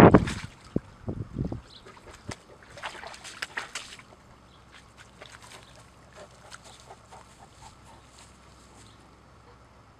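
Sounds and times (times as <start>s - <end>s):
low background hum: 0.0s - 9.9s
dog moving over muddy ground: 1.8s - 9.0s.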